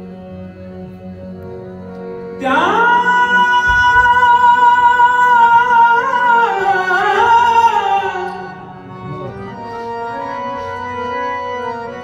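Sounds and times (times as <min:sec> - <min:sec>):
harmonium chords: 0:00.0 - 0:12.0
man singing a long note: 0:02.4 - 0:09.3.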